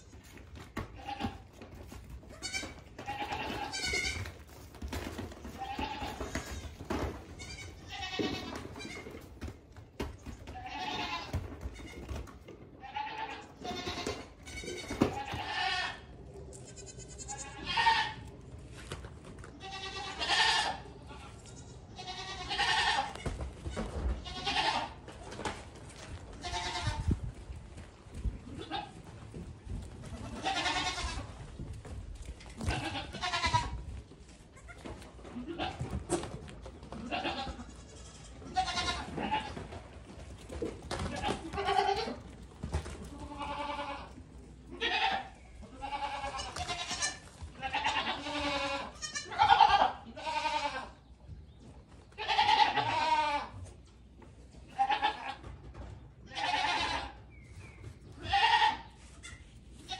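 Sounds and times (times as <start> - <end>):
goat kids bleating: 0.0 - 18.5, 19.4 - 25.1, 26.3 - 27.2, 28.4 - 29.1, 30.0 - 31.5, 32.5 - 36.1, 36.8 - 51.1, 52.1 - 53.8, 54.5 - 55.6, 56.2 - 57.3, 58.1 - 59.9.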